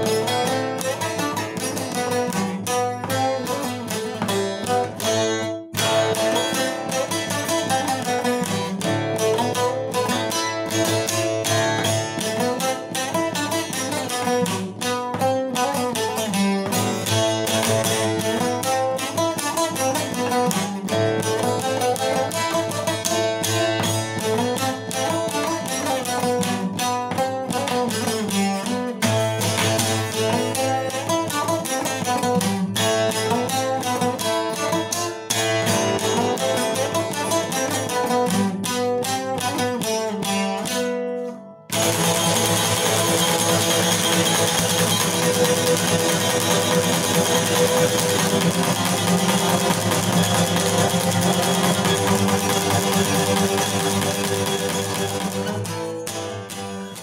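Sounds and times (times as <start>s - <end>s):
lute picked melody: 0.0s - 57.0s.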